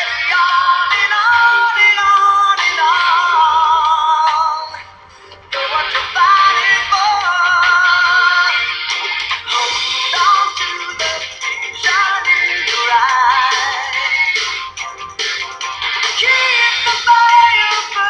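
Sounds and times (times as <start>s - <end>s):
pop song with processed vocal: 0.0s - 18.0s.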